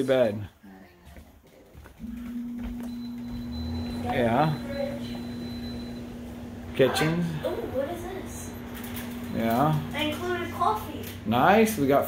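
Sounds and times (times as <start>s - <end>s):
steady mechanical hum: 1.0s - 12.0s.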